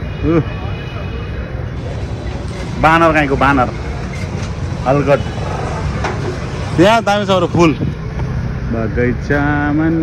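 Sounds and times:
scooters and motorbikes rumbling: 0:00.0 - 0:10.0.

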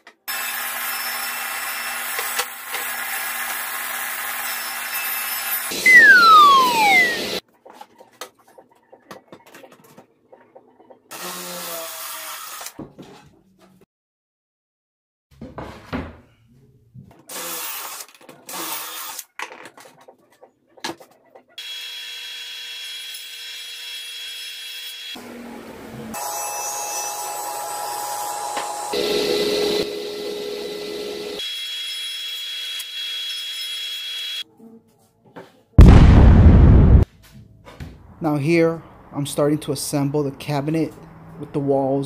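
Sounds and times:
drill bursts: 0:04.8 - 0:07.4
loud burst of noise: 0:05.7 - 0:07.4, 0:35.8 - 0:37.0.

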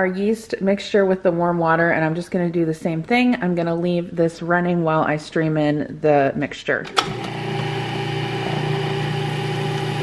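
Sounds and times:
food processor motor running: 0:07.0 - 0:10.0.

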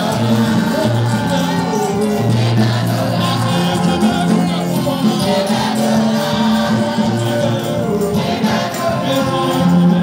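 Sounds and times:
gospel choir singing: 0:00.0 - 0:10.0
steady bass line: 0:00.0 - 0:10.0.

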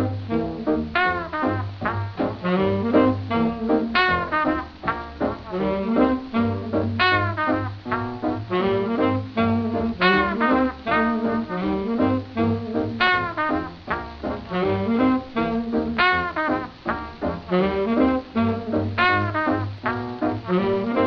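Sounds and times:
bass line: 0:00.0 - 0:21.0
horns riffing: 0:00.0 - 0:21.0.

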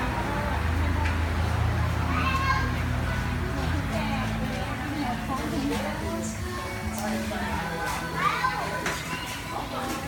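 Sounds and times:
people talking: 0:00.0 - 0:10.0
children's voices: 0:01.9 - 0:04.5, 0:05.7 - 0:10.0.

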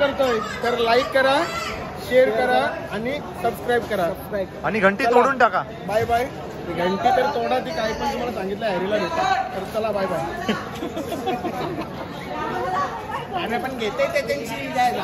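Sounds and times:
people chattering: 0:00.0 - 0:15.0.

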